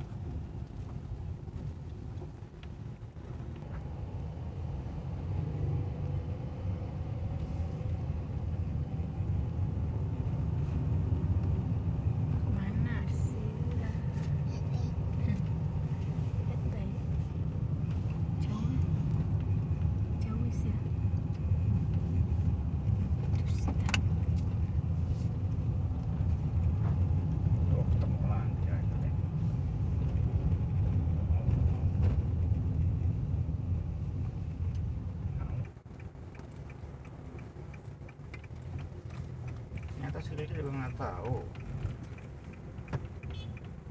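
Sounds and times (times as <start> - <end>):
engine and tyre rumble: 0.0 - 43.9.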